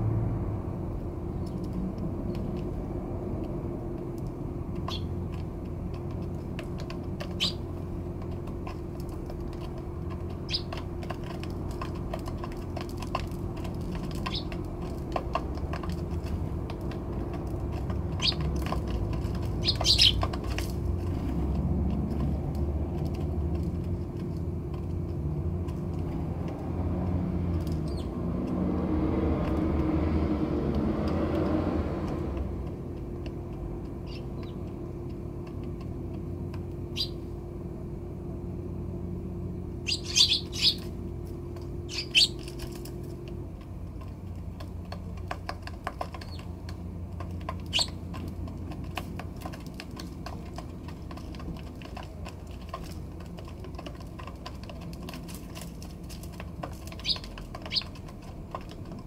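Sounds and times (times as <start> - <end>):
pecking ticks: 1.3 - 37.4, 39.7 - 59.0
sparrows chirping: 4.7 - 5.4, 6.2 - 14.9, 17.9 - 20.6, 27.6 - 28.2, 34.0 - 34.9, 36.7 - 37.4, 39.6 - 42.9, 46.0 - 46.6, 47.5 - 48.3, 56.8 - 58.0
steady low hum: 29.5 - 57.0.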